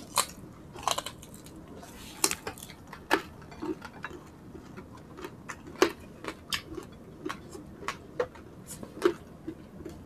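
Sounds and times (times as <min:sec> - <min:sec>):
chewing crispy food: 0:00.0 - 0:10.0.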